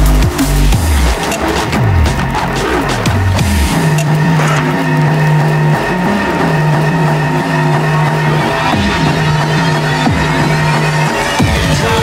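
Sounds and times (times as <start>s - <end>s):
drum and bass beat: 0.0s - 12.0s
steady high tones: 2.4s - 12.0s.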